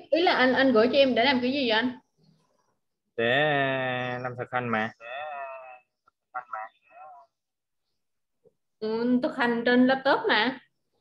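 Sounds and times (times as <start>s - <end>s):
person's voice over a video call: 3.2s - 7.4s.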